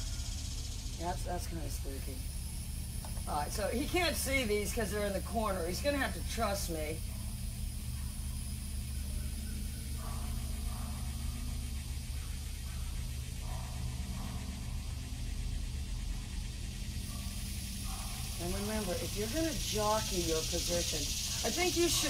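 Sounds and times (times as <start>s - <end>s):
motor humming: 0.0s - 22.0s.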